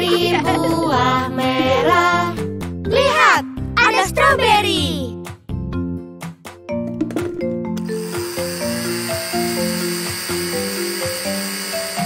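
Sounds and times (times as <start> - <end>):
cheerful children's music: 0.0 - 9.8
blender whirring: 7.8 - 12.0.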